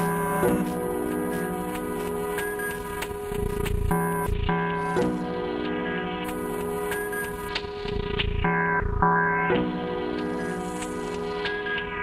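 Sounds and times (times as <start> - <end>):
looped sampler beat: 0.0 - 7.5.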